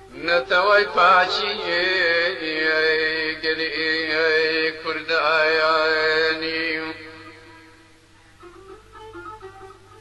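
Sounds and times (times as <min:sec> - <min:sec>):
man singing a long note: 0:00.0 - 0:07.9.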